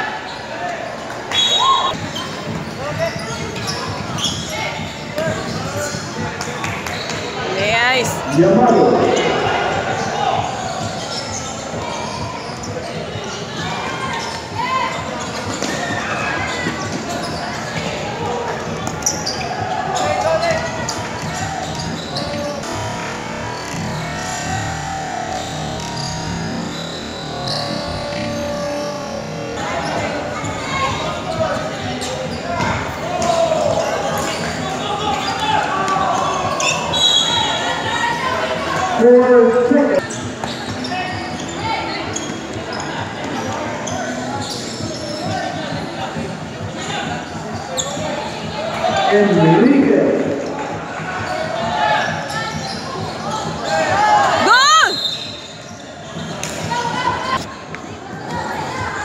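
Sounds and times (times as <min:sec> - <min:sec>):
people shouting and chattering: 0:00.0 - 0:59.0
shoe squeaks: 0:01.3 - 0:07.4, 0:10.0 - 0:17.8, 0:18.8 - 0:24.6, 0:25.3 - 0:45.9, 0:46.8 - 0:48.3, 0:52.1 - 0:57.5.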